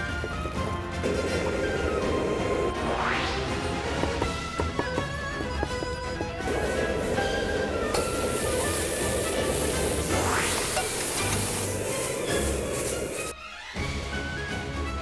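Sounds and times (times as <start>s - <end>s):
background music: 0.0s - 15.0s
food sizzling in hot oil: 7.9s - 13.3s.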